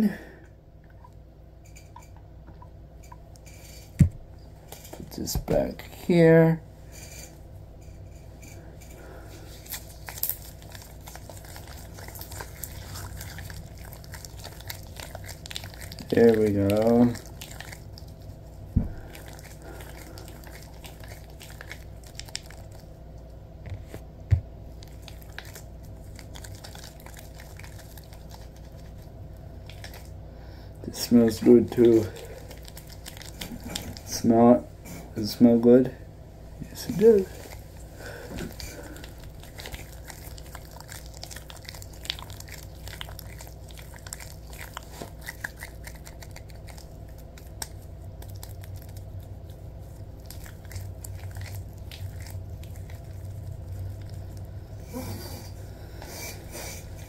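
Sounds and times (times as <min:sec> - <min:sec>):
latex gloves squelching: 0:09.0 - 0:23.2, 0:24.7 - 0:30.2, 0:30.9 - 0:34.2, 0:36.6 - 0:57.0.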